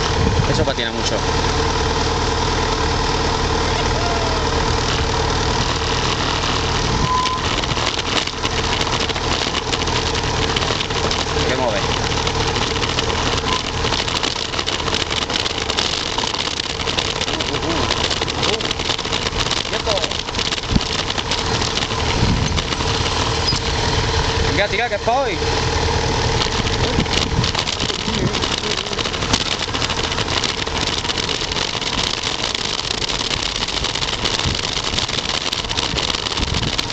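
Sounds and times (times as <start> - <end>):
crackling noise: 0.0 - 36.9
motorcycle engine at low revs: 0.0 - 36.9.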